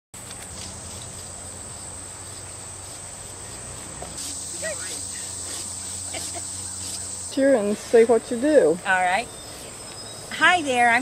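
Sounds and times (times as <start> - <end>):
high-pitched insect chorus: 0.6 - 11.0.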